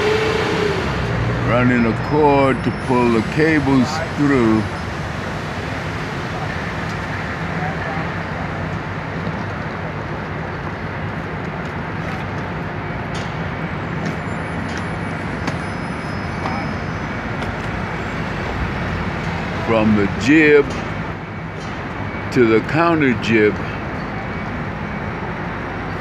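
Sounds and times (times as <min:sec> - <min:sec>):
city street traffic: 0:00.0 - 0:26.0
low engine hum: 0:00.0 - 0:26.0.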